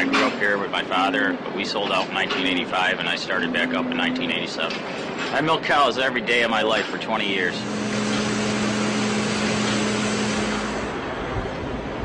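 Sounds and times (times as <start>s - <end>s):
machine hissing and humming: 7.4s - 11.3s.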